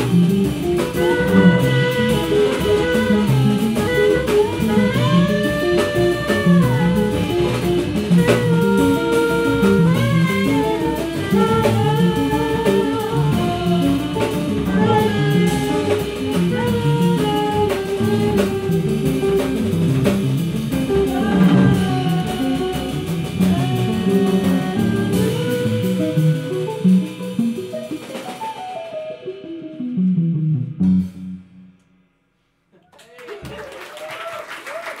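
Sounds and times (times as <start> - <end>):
plucked double bass: 0.0 - 27.4, 30.0 - 31.6
held gliding melody line: 0.0 - 28.6
drum kit: 0.0 - 31.9
audience applauding: 32.8 - 35.0
whoops and cheers: 32.8 - 35.0.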